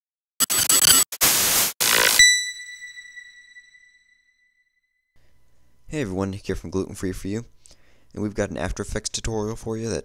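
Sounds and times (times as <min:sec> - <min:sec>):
loud static noise: 0:00.4 - 0:02.2.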